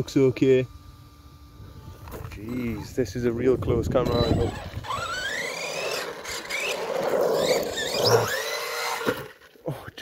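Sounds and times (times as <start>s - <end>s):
electric motor whining: 0.0s - 9.5s.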